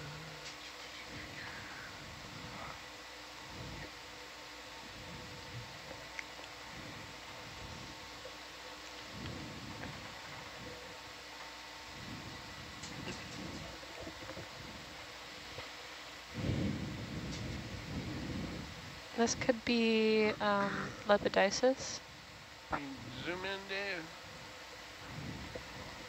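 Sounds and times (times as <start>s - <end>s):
faint electronic hum: 0.0s - 26.0s.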